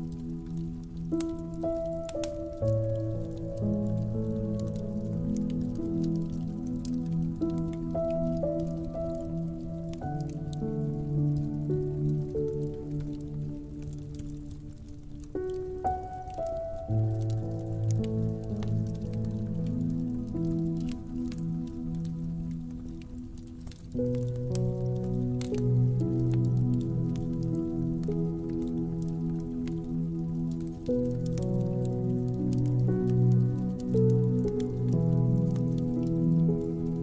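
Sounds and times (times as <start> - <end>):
soft piano chords: 0.0 - 37.0
wood fire crackling: 0.0 - 37.0.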